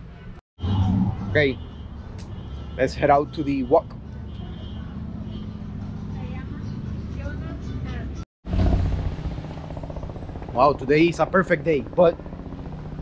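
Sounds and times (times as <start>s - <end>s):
low street rumble: 0.0s - 13.0s.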